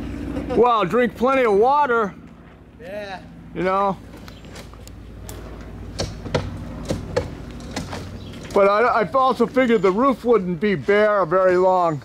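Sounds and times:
sharp irregular knocks: 0:05.9 - 0:08.6.

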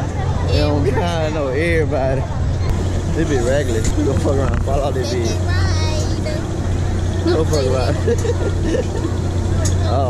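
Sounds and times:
steady low hum: 0:00.0 - 0:10.0
voices: 0:00.0 - 0:10.0
man laughing: 0:07.3 - 0:09.2.

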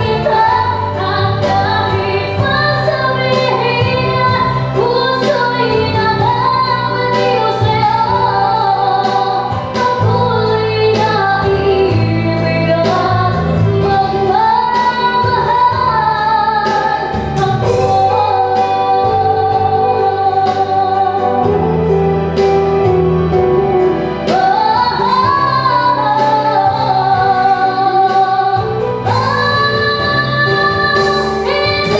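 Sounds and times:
woman singing: 0:00.0 - 0:22.0, 0:24.2 - 0:31.9
instrumental backing with beat: 0:00.0 - 0:31.9.

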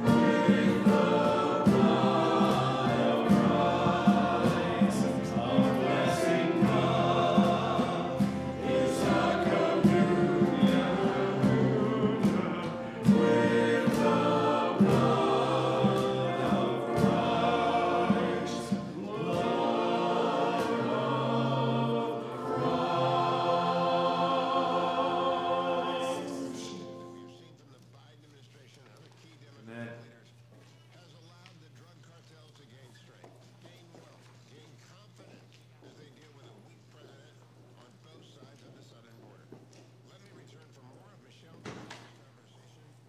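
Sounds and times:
choir singing a worship song: 0:00.0 - 0:27.4.

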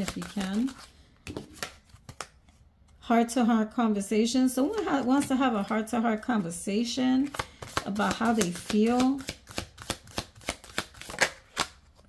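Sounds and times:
cards being shuffled: 0:00.0 - 0:02.6, 0:07.2 - 0:12.0.

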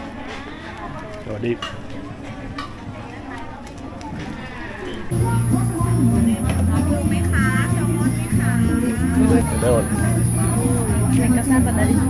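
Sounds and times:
people talking: 0:00.0 - 0:12.0
loud music: 0:05.1 - 0:12.0.

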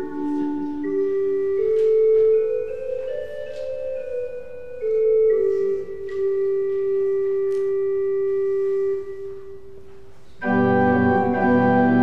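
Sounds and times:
organ note held: 0:00.0 - 0:12.0.

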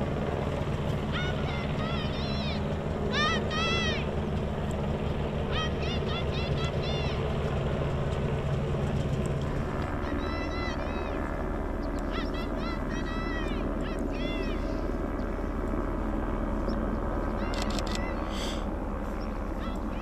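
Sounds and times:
microlight aircraft engine running: 0:00.0 - 0:20.0
short high arching calls: 0:10.0 - 0:15.0.

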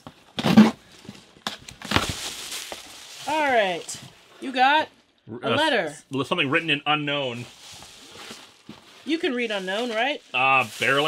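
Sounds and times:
cardboard box scraping rustle: 0:07.4 - 0:11.0.

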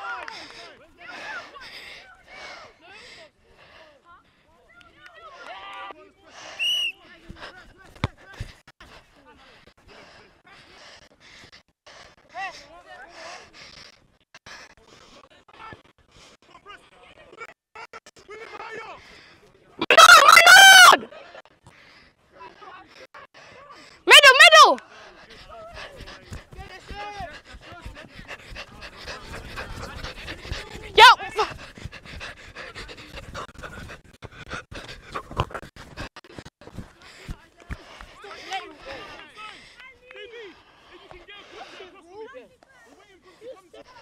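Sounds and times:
loud shouts: 0:19.8 - 0:21.1, 0:24.1 - 0:24.8, 0:30.7 - 0:31.5
scuffs from play: 0:25.2 - 0:39.0.

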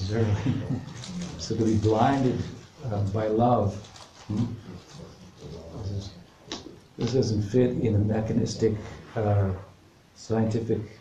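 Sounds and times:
faint low vocal sounds: 0:00.0 - 0:03.1.

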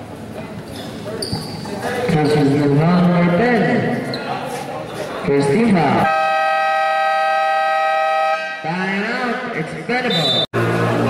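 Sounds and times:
game buzzer: 0:06.1 - 0:08.6.

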